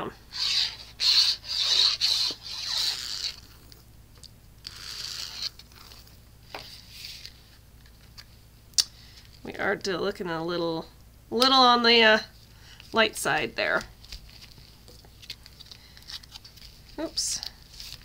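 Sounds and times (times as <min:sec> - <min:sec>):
paper rubbing and scraping: 0:00.3 - 0:03.6, 0:04.7 - 0:07.6, 0:14.3 - 0:18.0.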